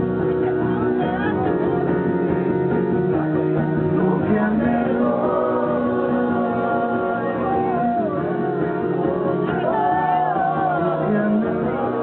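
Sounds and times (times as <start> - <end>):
voices singing long notes: 4.0 - 12.0.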